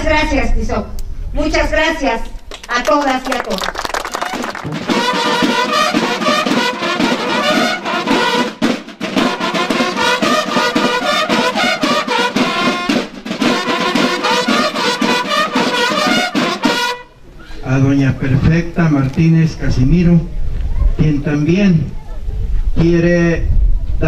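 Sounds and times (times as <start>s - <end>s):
brass band playing: 3.9s - 17.3s
steady drum beat: 4.0s - 17.1s.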